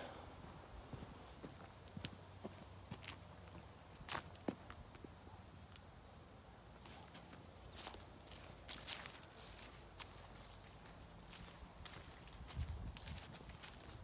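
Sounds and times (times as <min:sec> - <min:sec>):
footsteps scuffing on tarmac: 0:06.9 - 0:14.0.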